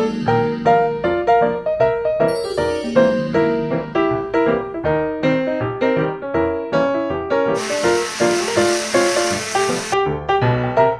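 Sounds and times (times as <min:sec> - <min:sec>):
instrumental music with single notes: 0:00.0 - 0:08.9
steady hiss: 0:07.6 - 0:10.0.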